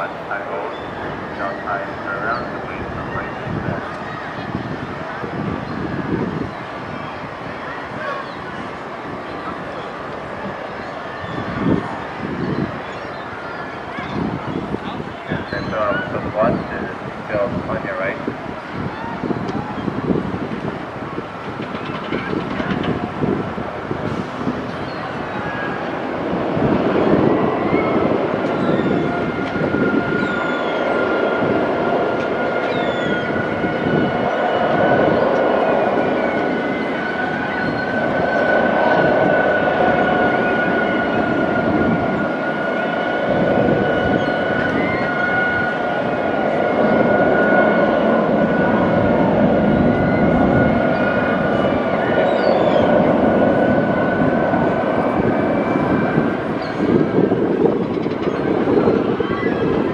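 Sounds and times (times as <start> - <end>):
moving vehicle running noise: 0.0 - 59.9.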